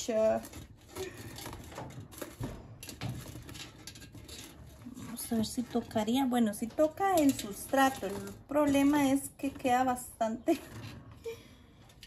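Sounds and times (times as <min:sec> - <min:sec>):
hands rustling and scraping plant: 0:00.0 - 0:12.0.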